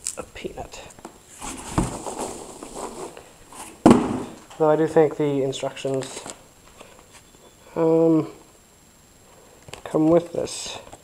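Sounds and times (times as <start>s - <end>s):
rustling and crackling handling noise: 0.0s - 4.7s, 5.8s - 7.4s.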